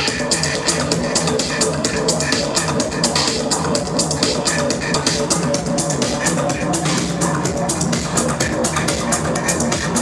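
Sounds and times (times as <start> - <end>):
electronic dance music: 0.0 - 10.0
pulsing bass: 0.0 - 10.0.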